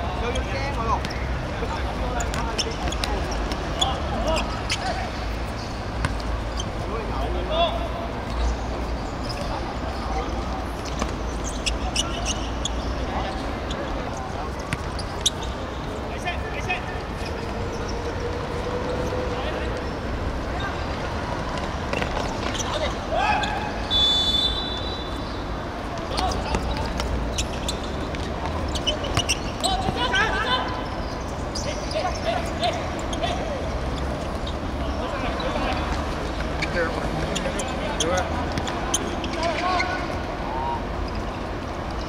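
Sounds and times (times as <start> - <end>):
players shouting: 22.6 - 25.3.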